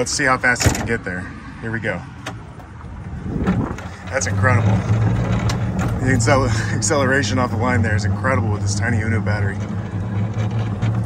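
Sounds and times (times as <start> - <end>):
electric golf cart pulling away: 3.5 - 11.0.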